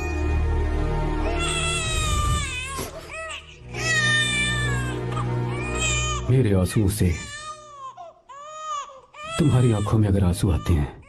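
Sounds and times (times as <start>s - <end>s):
low sustained music score: 0.0s - 7.3s
newborn baby crying: 1.2s - 11.0s.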